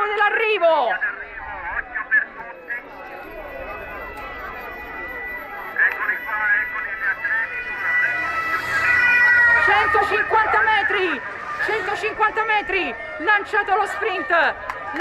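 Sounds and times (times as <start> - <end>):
roadside crowd chattering: 0.0 - 15.0
high siren tone: 1.2 - 14.6.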